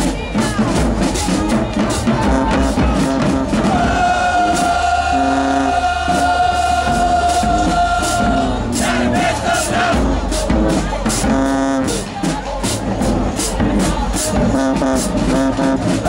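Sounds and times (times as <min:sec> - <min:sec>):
drum hits: 0:00.0 - 0:16.0
marching band brass playing: 0:00.0 - 0:16.0.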